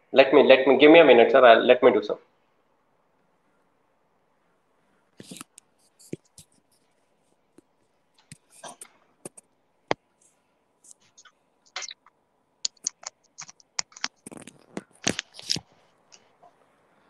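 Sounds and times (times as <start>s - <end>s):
scraping and rubbing on device: 5.1s - 9.5s, 10.2s - 16.4s.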